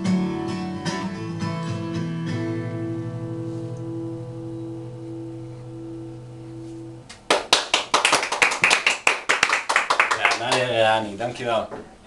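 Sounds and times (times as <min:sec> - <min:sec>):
group clapping: 0:07.1 - 0:10.8
man talking: 0:10.1 - 0:11.8.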